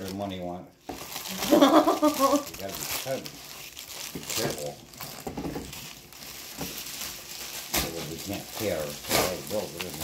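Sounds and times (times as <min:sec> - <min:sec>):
bubble wrap rustling and crackling: 0:00.0 - 0:10.0.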